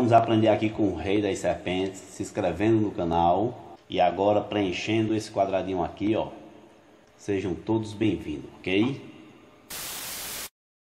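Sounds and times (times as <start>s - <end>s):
hissing white-noise static: 9.7s - 10.6s.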